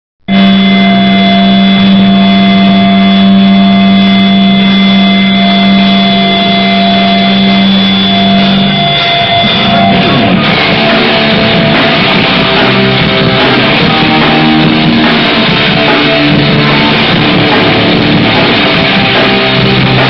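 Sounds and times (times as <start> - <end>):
distorted electric guitars and bass: 0.2 - 20.0.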